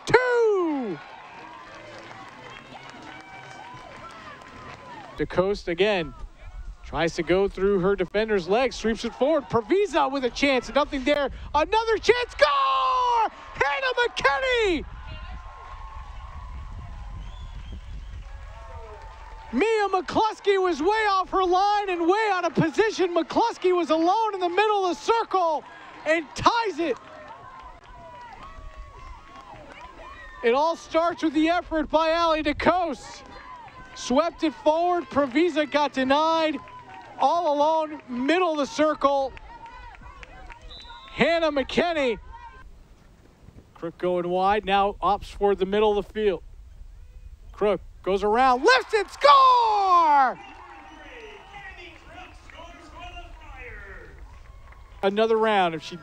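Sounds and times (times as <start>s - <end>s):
distant shouts and calls: 5.9s - 17.8s, 18.4s - 42.7s, 47.6s - 56.0s
wind rumble on microphone: 14.8s - 19.5s.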